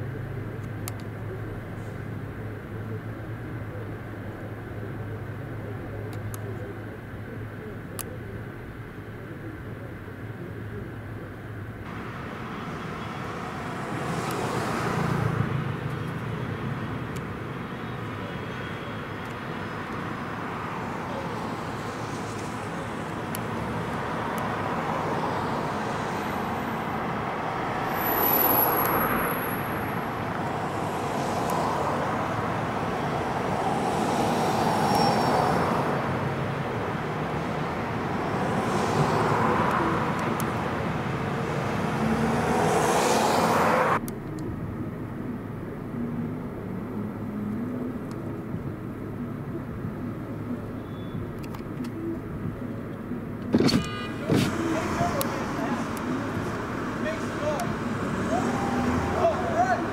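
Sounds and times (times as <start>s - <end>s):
quiet street background: 0.0s - 59.9s
cars passing: 10.4s - 59.9s.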